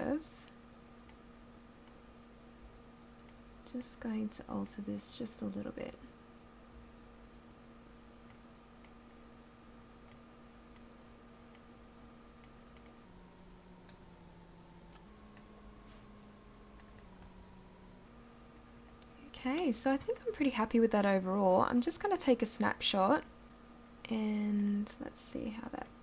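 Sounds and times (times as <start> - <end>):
faint steady hum: 0.0 - 26.0
computer mouse clicks: 16.7 - 17.0.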